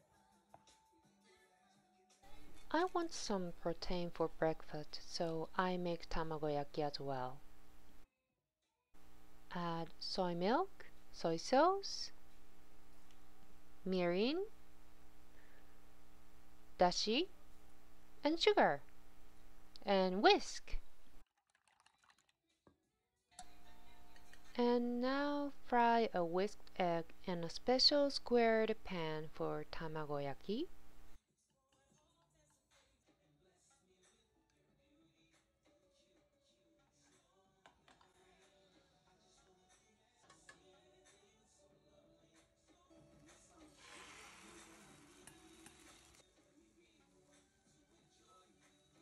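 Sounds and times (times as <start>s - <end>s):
background music: 0.0s - 8.0s, 9.0s - 21.2s, 23.4s - 31.2s, 32.0s - 49.0s
person speaking: 2.4s - 7.5s, 9.1s - 12.2s, 13.8s - 14.6s, 16.7s - 17.4s, 18.2s - 18.9s, 19.7s - 21.0s, 23.4s - 30.8s.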